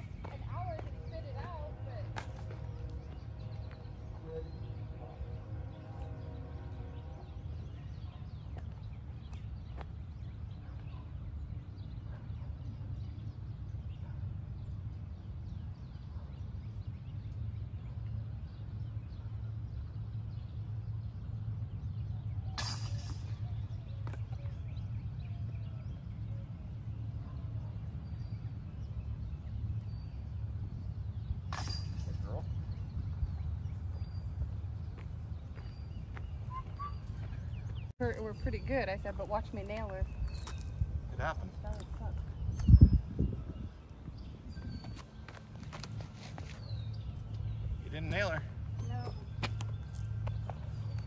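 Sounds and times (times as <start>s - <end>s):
low outdoor rumble: 0.0s - 51.0s.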